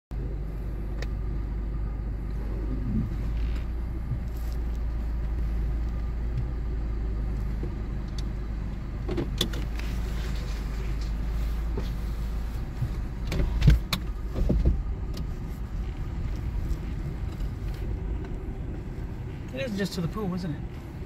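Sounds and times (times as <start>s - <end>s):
car road and engine noise: 0.1s - 21.0s.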